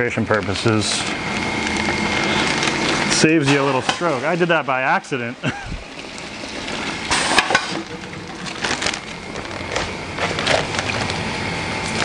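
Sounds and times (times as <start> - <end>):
pellets and water pouring into bag: 0.0 - 4.5, 6.0 - 11.2.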